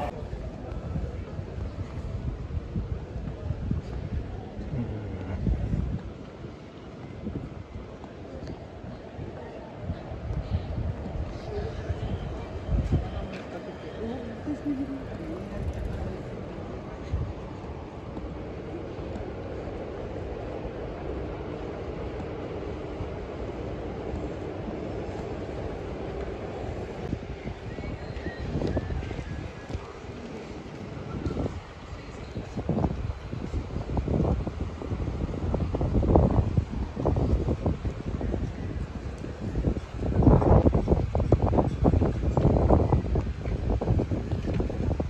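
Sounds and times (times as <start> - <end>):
city street rumble: 0.0 - 45.0
wind buffeting microphone: 0.0 - 45.0.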